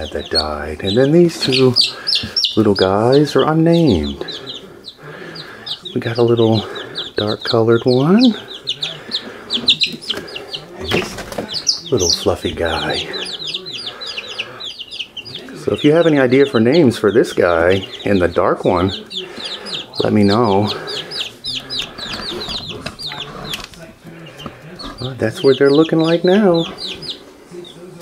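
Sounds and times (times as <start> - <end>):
chicks peeping: 0.0 - 28.0.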